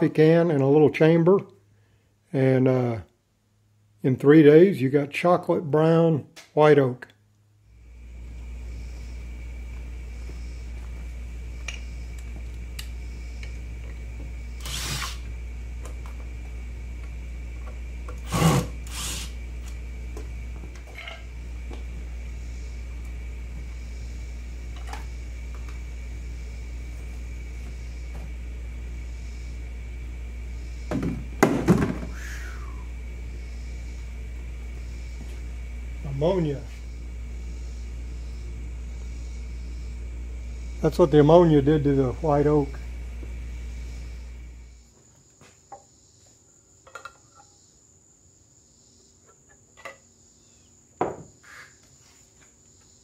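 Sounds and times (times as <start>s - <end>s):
steady low rumble: 7.6s - 18.1s
wooden boards knocking: 30.9s - 32.1s.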